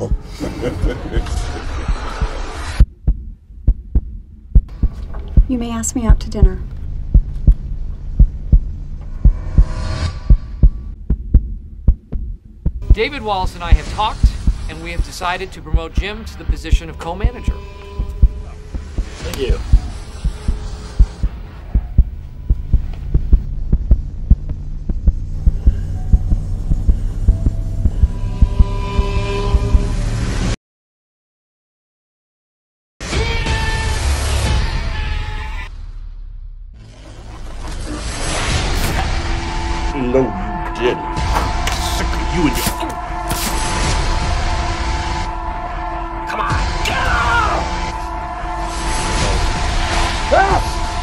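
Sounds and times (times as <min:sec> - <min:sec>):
heartbeat thuds: 0:00.0 - 0:29.9
deep pulsing thumps: 0:00.0 - 0:30.6
low drone: 0:00.0 - 0:30.6, 0:37.0 - 0:51.0.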